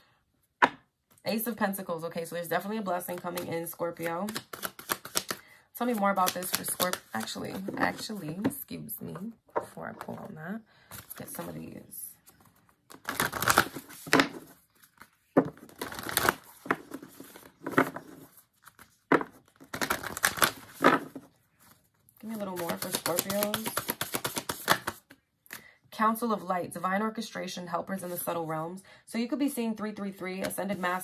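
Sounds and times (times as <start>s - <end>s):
woman's voice: 1.2s - 4.4s, 5.8s - 12.2s, 22.2s - 23.8s, 25.9s - 31.0s
cards being shuffled: 3.1s - 8.5s, 12.3s - 21.8s, 22.4s - 25.1s.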